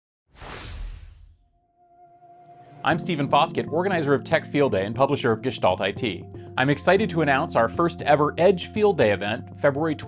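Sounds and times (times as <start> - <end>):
whoosh sound effect: 0.3 - 1.5.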